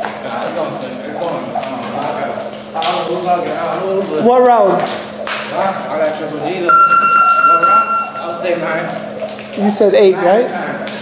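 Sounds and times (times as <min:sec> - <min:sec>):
jump rope slapping floor: 0:00.0 - 0:06.7.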